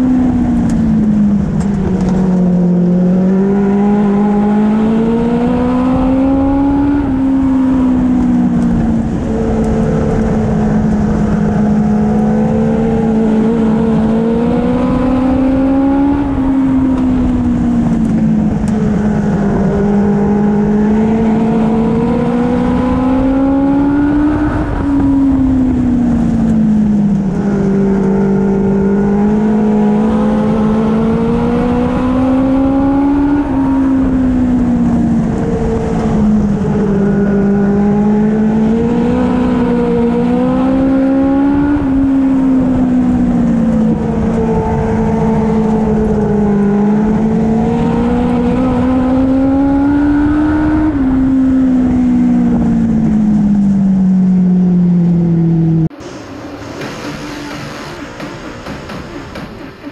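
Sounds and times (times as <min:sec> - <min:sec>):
race car engine at speed: 0:00.0 - 0:59.9.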